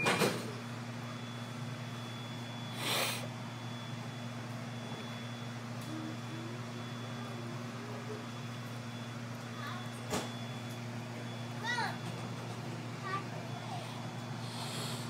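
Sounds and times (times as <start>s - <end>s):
light rail car hum: 3.3s - 15.0s.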